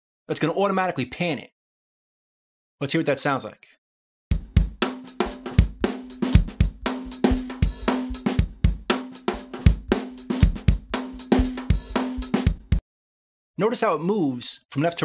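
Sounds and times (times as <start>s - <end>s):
drum kit beat: 4.3s - 12.8s.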